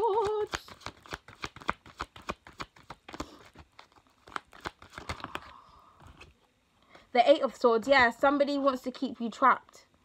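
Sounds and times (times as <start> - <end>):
cards being shuffled: 0.0 - 6.4.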